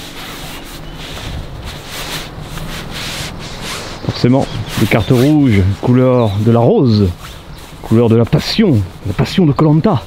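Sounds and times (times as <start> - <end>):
faint scrapes: 0.0 - 9.8
rustling rubbing noise: 0.0 - 10.0.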